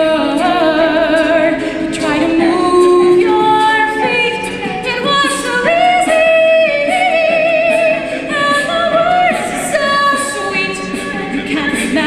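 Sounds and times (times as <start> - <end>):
backing voices singing: 0.0 - 12.0
woman singing lead: 0.0 - 12.0.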